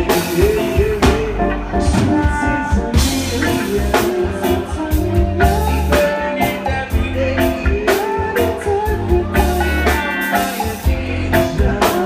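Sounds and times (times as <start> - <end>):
live reggae band: 0.0 - 12.0.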